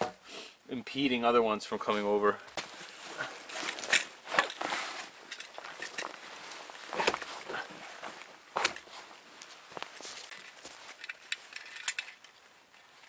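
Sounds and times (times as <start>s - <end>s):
wooden poles knocking and scraping: 2.6s - 8.9s.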